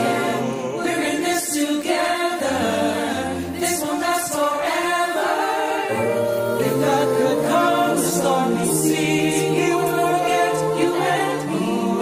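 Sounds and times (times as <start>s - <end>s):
a cappella group singing: 0.0s - 12.0s.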